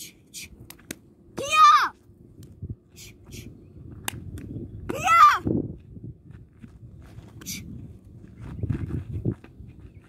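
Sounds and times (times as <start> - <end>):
feet scuffing on gravelly dirt: 5.6 - 10.0.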